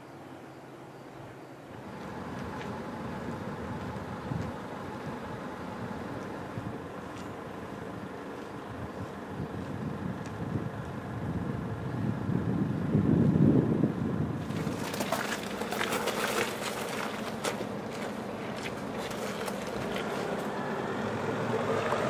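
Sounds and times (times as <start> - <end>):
wind rumbling on microphone: 1.8 - 22.0.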